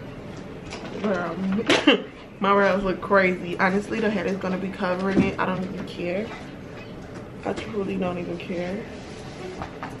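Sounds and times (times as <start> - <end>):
woman clearing throat: 1.7 - 2.1.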